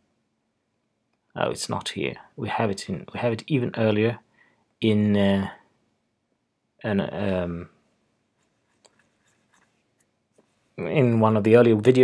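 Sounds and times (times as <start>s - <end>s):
man speaking: 1.4s - 4.2s, 4.8s - 5.7s, 6.8s - 7.8s, 10.8s - 12.0s.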